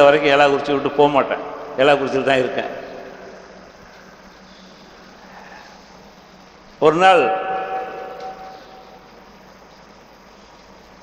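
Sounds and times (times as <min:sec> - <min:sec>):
man's voice over public address: 0:00.0 - 0:03.3, 0:06.8 - 0:08.3
low hiss of room tone: 0:00.0 - 0:11.0.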